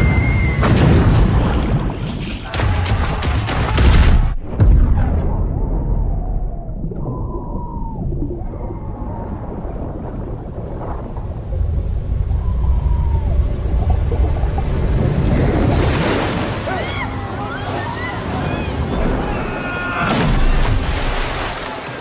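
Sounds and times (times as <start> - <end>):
underwater churning rumble: 3.6 - 22.0
bubbles: 5.7 - 16.4.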